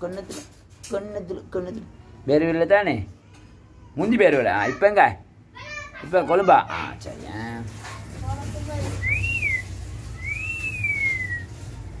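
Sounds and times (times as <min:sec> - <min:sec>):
person whistling: 0:09.0 - 0:11.5.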